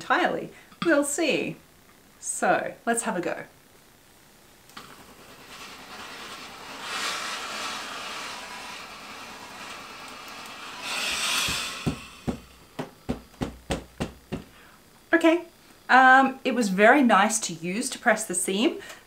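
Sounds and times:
burst of steam: 4.8 - 12.8
steam iron hissing: 4.8 - 13.4.

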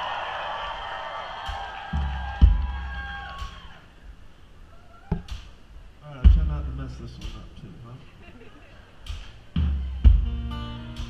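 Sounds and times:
deep low thuds: 2.0 - 3.6, 6.2 - 7.4, 9.1 - 11.0
live band playing: 9.1 - 11.0.

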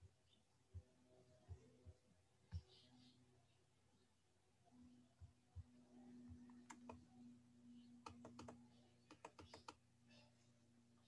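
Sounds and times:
faint steady hum: 0.0 - 11.0
light computer clicks: 6.4 - 7.0, 8.0 - 9.8.

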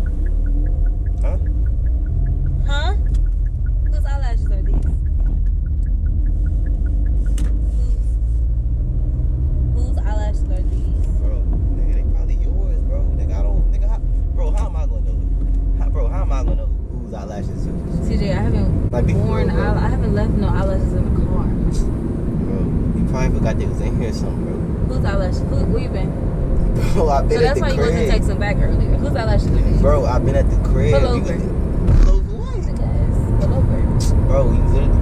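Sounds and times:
car road and engine rumble: 0.0 - 35.0
people talking: 1.2 - 1.5, 2.6 - 3.1, 3.8 - 5.0, 9.8 - 15.2, 15.8 - 35.0.

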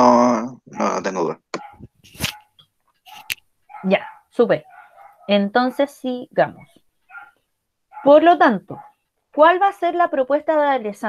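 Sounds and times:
dog barking through microphone: 0.7 - 2.5, 3.1 - 5.9, 6.5 - 9.0.

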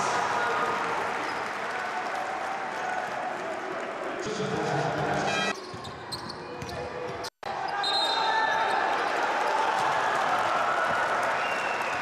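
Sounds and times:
sneaker squeaks: 5.3 - 8.3.

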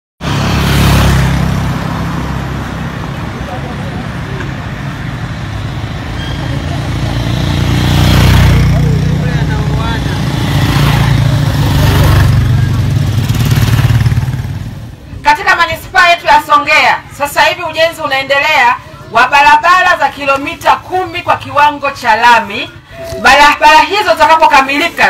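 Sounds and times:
motorcycles and cars passing: 0.2 - 15.9.

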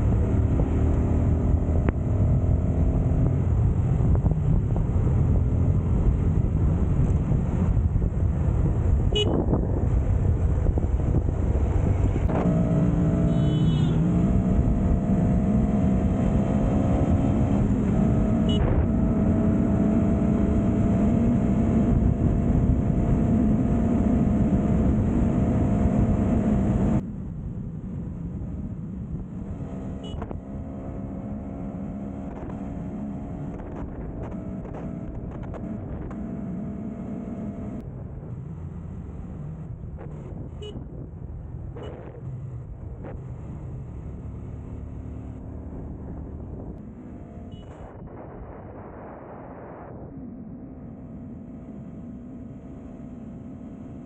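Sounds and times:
rushing wind: 0.0 - 13.3, 13.9 - 54.0
road noise: 0.0 - 54.0.

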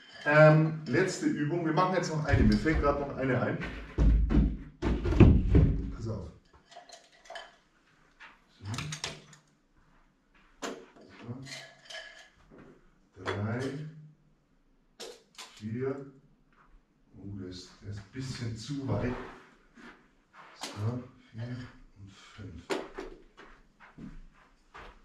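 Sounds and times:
men talking: 0.1 - 3.8, 6.0 - 6.3, 8.6 - 9.0, 11.2 - 11.6, 13.2 - 13.9, 15.5 - 16.0, 17.2 - 19.3, 20.6 - 22.7.

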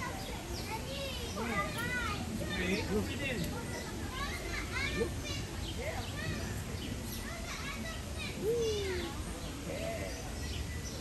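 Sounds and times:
crowd chatter with children: 0.0 - 11.0.

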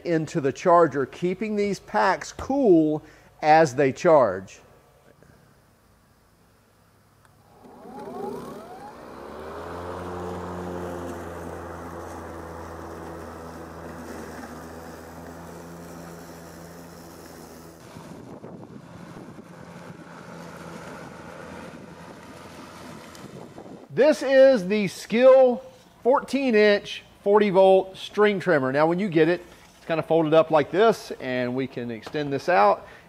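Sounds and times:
electric lawn mower running: 7.2 - 23.9.

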